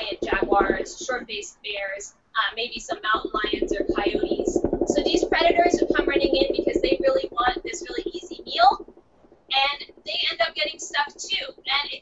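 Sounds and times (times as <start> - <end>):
woman speaking: 0.0 - 8.8, 9.5 - 12.0.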